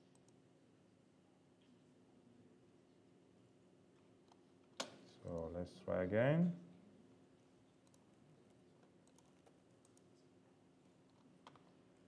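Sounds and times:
computer keyboard typing: 9.0s - 10.0s.

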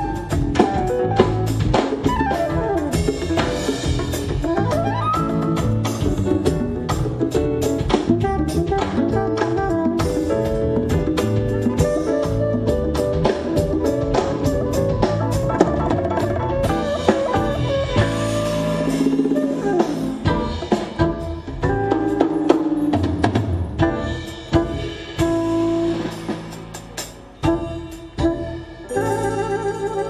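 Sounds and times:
drum kit beat: 0.0s - 30.0s
grand piano: 0.0s - 30.0s.

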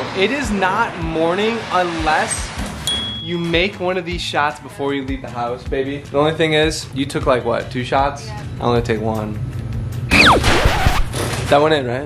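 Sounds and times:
loud rush of noise: 0.0s - 2.9s
quick falling whistle: 10.1s - 11.1s.

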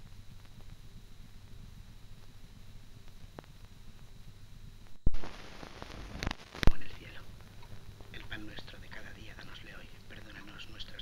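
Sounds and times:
background hum and hiss: 0.0s - 11.0s
film soundtrack pops: 4.8s - 11.0s.

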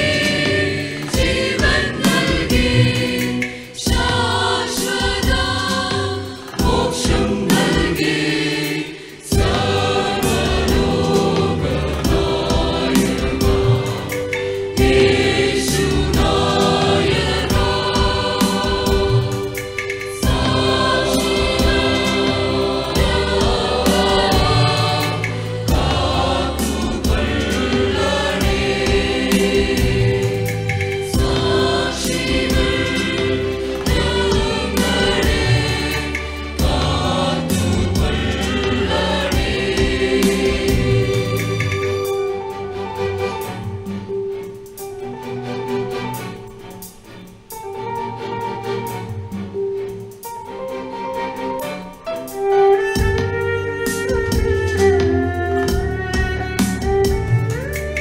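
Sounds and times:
church choir singing a hymn: 0.0s - 42.2s.

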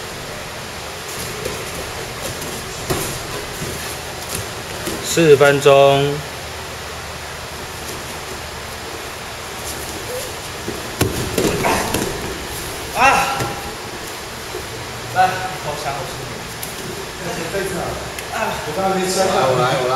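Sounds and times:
steady background hiss: 0.0s - 19.9s
bodies thudding onto mat: 9.8s - 14.7s.

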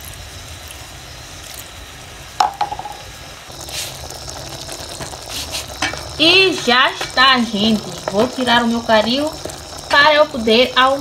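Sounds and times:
curry sizzling in pot: 0.0s - 11.0s.

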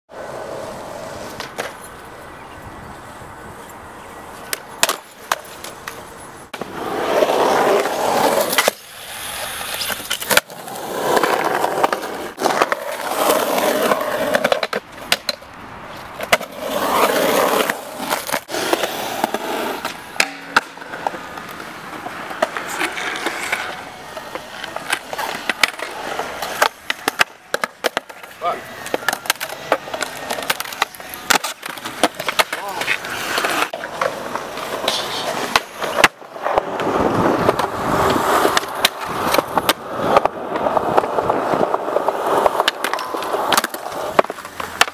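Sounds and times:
skateboard wheels rolling on concrete: 0.1s - 44.9s
skateboard popping and landing clacks: 1.2s - 1.8s, 4.4s - 8.9s, 9.6s - 44.9s.

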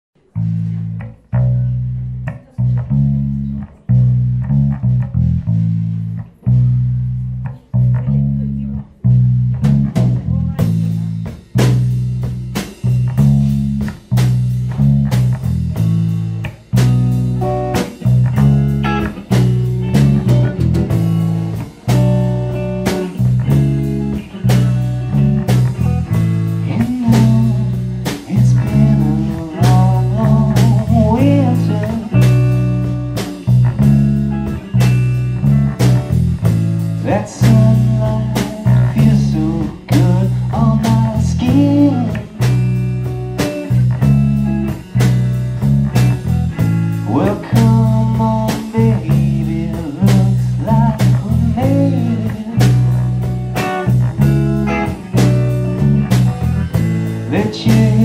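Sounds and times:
bass guitar riff: 0.2s - 58.0s
electric guitar: 0.2s - 58.0s
drums with cymbals: 9.6s - 58.0s.

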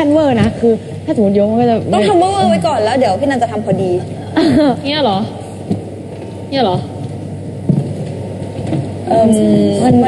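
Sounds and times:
room noise with low hum: 0.0s - 10.0s.

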